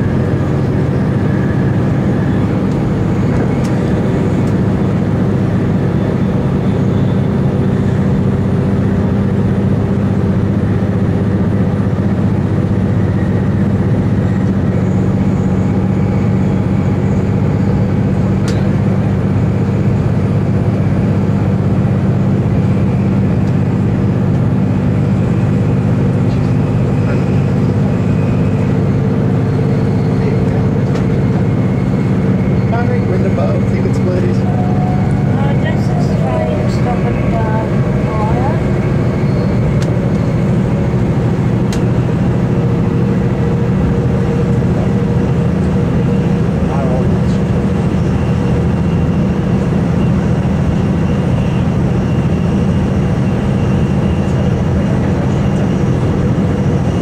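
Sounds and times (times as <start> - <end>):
train interior drone: 0.0 - 57.0.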